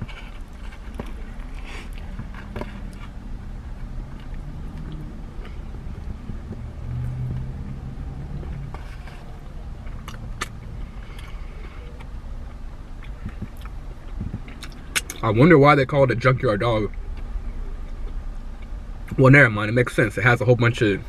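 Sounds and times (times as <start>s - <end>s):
person chewing: 0.0s - 15.2s
low hum inside a car: 0.0s - 21.0s.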